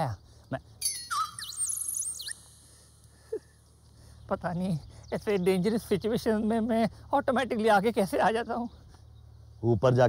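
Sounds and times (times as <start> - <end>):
high-pitched electronic whistle tone: 0.8 - 2.8.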